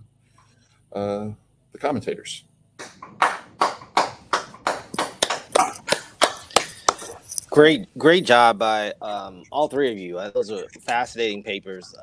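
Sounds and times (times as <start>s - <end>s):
hand clapping: 2.8s - 7.2s.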